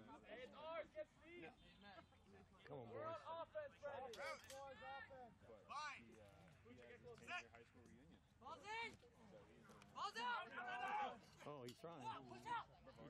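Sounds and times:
people calling and shouting: 0.0 - 13.0.

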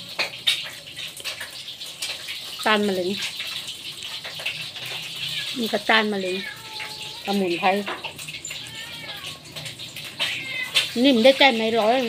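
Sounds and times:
rain on a metal roof: 0.0 - 12.0.

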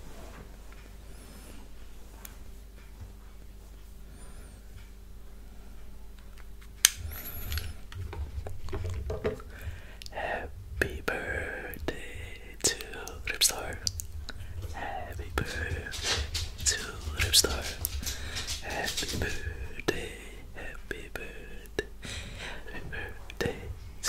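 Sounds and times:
mouth clicks: 6.8 - 21.0
man whispering: 9.4 - 24.0.

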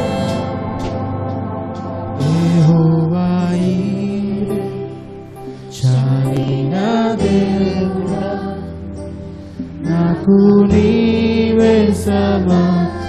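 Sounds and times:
electric guitar: 0.0 - 13.0
keyboard: 0.0 - 13.0
vocalists singing praise song: 2.1 - 13.0.

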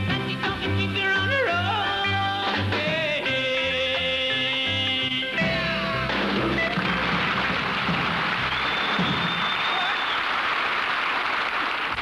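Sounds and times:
audience applauding: 6.5 - 12.0.

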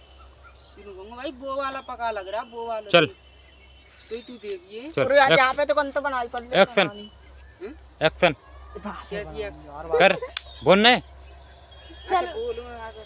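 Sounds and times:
high-pitched insect drone: 0.0 - 13.0
young men talking: 1.2 - 3.2, 4.7 - 13.0.

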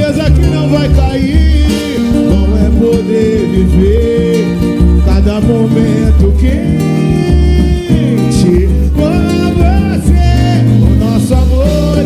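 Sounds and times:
acoustic guitar: 0.0 - 12.0
low bass line: 0.0 - 12.0
person singing: 0.0 - 12.0.

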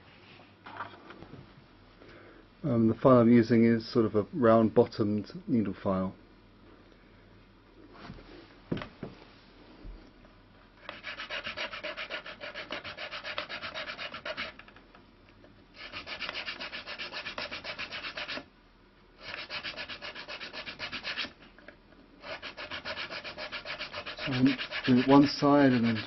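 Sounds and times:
needle file filing wood: 10.8 - 14.6, 15.8 - 18.4, 19.2 - 21.4, 22.2 - 26.0.

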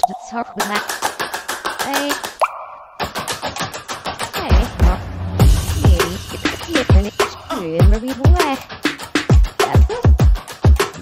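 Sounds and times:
clicking popping sound effects: 0.0 - 1.0, 1.8 - 3.0.

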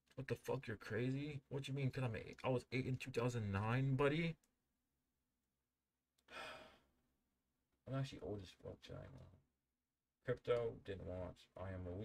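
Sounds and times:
man sighing: 6.2 - 6.8.

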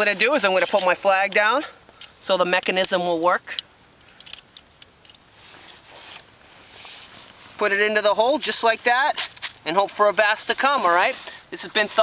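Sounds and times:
clothing and snow rustling: 5.3 - 9.0, 9.8 - 12.0.

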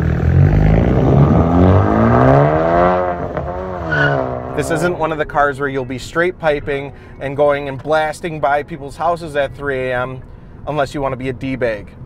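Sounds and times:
car accelerating with gear change: 0.0 - 5.2.

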